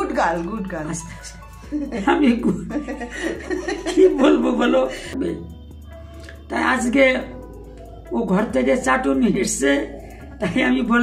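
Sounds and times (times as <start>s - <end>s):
man and woman laughing: 1.6s - 5.5s
laughing speech: 1.7s - 5.5s.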